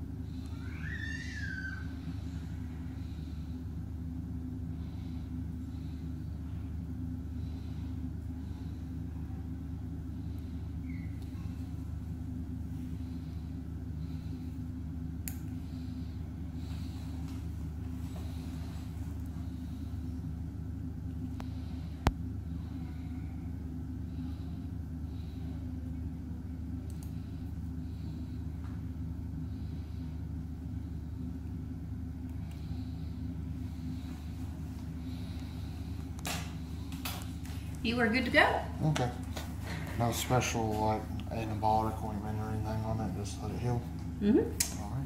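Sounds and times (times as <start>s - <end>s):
low hum of room equipment: 0.0s - 45.0s.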